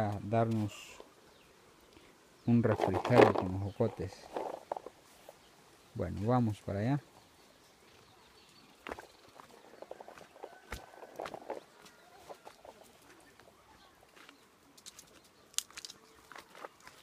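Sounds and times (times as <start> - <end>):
footsteps crunching on stones and leaves: 2.6 - 5.5, 7.8 - 17.0
chickens calling: 8.5 - 14.4.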